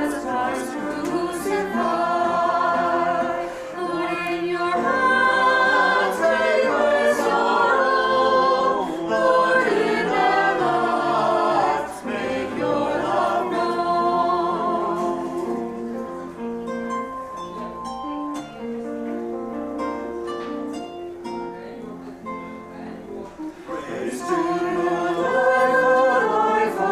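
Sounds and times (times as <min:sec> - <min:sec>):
choir singing unaccompanied: 0:00.0 - 0:16.0, 0:23.4 - 0:26.9.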